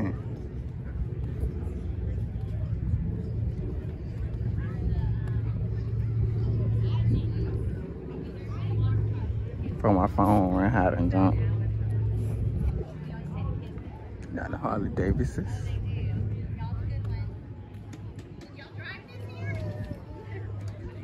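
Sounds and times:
engine hum: 0:00.0 - 0:21.0
faint murmur of voices: 0:00.0 - 0:21.0.

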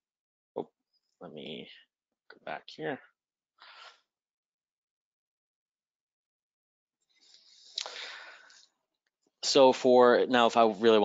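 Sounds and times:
soft breath into microphone: 0:07.1 - 0:08.7.

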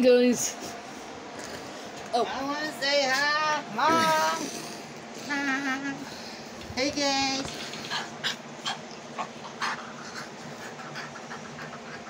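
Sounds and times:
puppy breathy sounds: 0:07.5 - 0:12.0.

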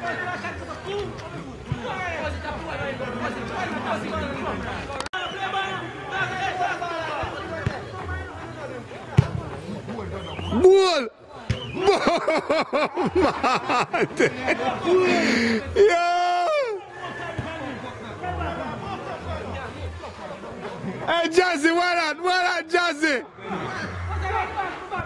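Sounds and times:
voices talking over one another: 0:13.1 - 0:25.0.

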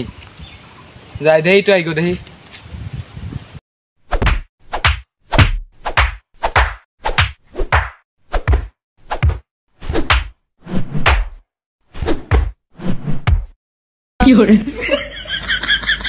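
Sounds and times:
insects chirring: 0:00.0 - 0:03.6
punch sound effects with swish: 0:04.1 - 0:13.6.

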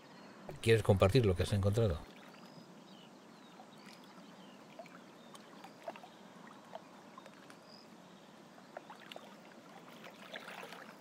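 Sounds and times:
water lapping and trickling: 0:01.7 - 0:11.0
small clicks and drips: 0:04.8 - 0:07.6, 0:08.7 - 0:11.0.

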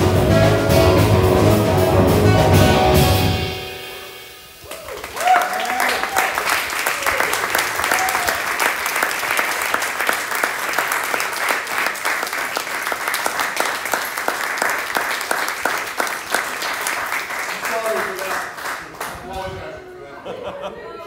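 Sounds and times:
person whooping: 0:04.6 - 0:08.5
audience applauding: 0:04.6 - 0:19.6.

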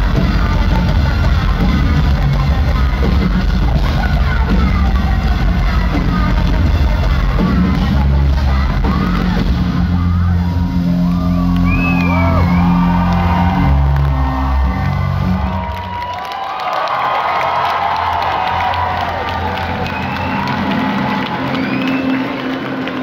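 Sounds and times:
crowd cheering and whooping: 0:08.5 - 0:23.0.

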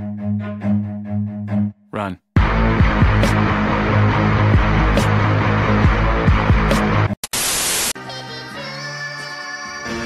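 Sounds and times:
bass-heavy music with thumping beat: 0:02.4 - 0:07.2
loud static hiss: 0:07.2 - 0:08.0.

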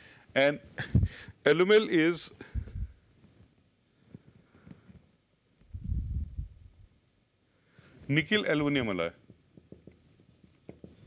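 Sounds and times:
marker writing on whiteboard: 0:08.7 - 0:11.0.

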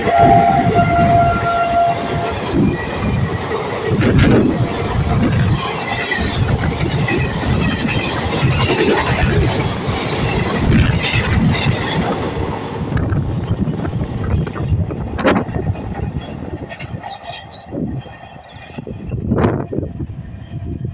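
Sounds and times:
train horn blast: 0:00.0 - 0:02.6
train passing at high speed: 0:00.0 - 0:20.9
wheels clattering over rail joints: 0:02.2 - 0:18.8.

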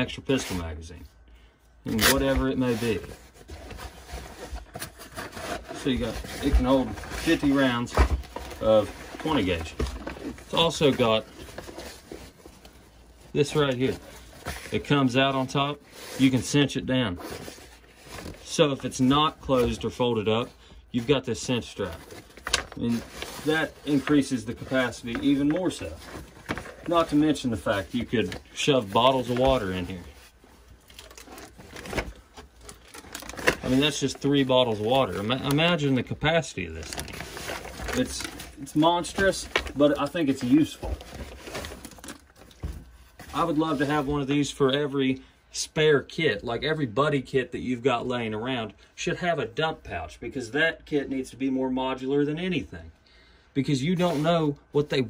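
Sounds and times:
nylon pouch rustling: 0:01.9 - 0:44.0
plastic bottles crinkling and knocking: 0:01.9 - 0:44.5.

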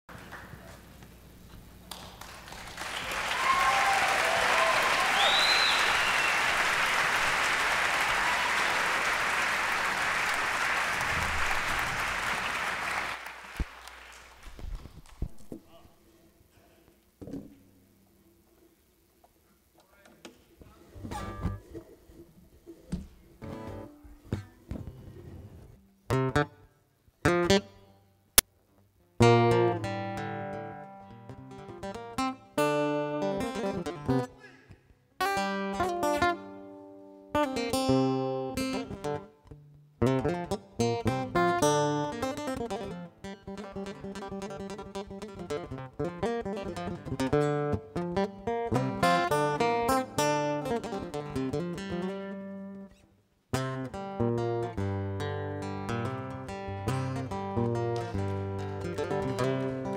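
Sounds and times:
audience applause: 0:01.9 - 0:14.6
acoustic guitars plucked: 0:20.8 - 0:28.1, 0:29.0 - 0:59.9.

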